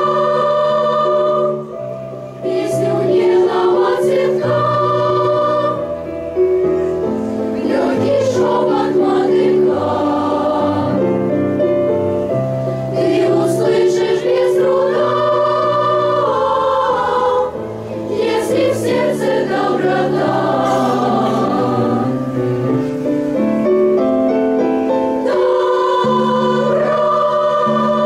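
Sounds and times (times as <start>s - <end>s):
children's choir singing: 0.0s - 11.9s, 12.8s - 23.4s, 24.8s - 28.0s.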